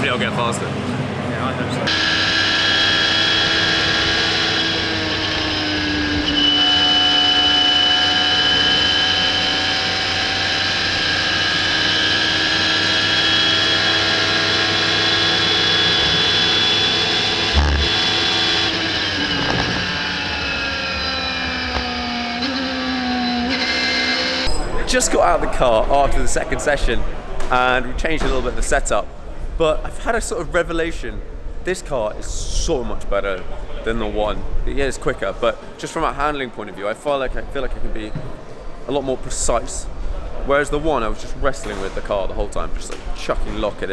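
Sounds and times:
race car engine at high revs: 0:01.8 - 0:24.5.

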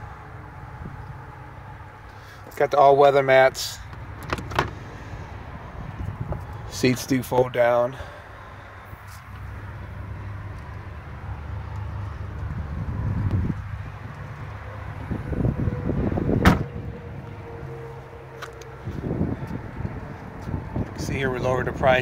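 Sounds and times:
steady low rumble: 0:00.0 - 0:22.0
car hatch slamming: 0:04.2 - 0:04.8, 0:16.4 - 0:16.8.

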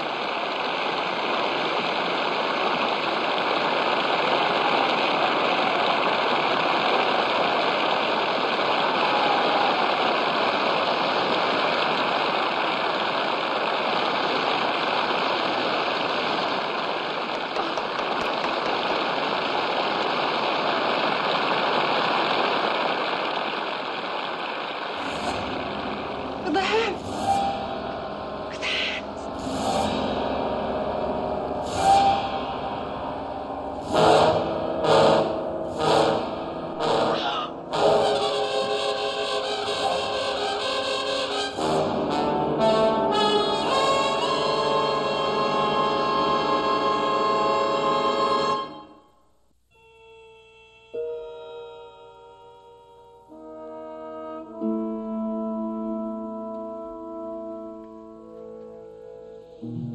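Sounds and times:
audience applauding: 0:00.0 - 0:29.4, 0:36.0 - 0:49.0
short vocal outbursts: 0:26.4 - 0:27.0, 0:28.5 - 0:29.2, 0:37.2 - 0:37.6.

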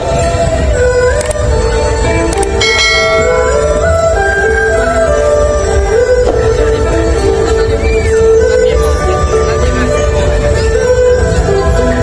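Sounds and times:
music playing: 0:00.0 - 0:12.0
bright bell-like chime: 0:02.6 - 0:04.3.

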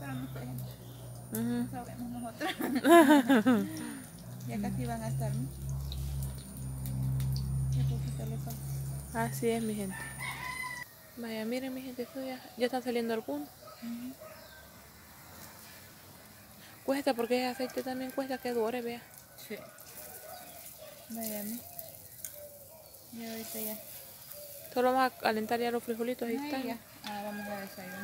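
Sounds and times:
bananas frying in oil: 0:00.0 - 0:28.0.

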